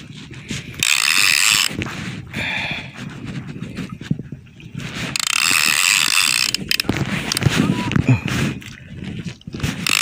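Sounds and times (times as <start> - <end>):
fishing reel ratchet clicking: 0.7 - 1.7, 5.1 - 7.4.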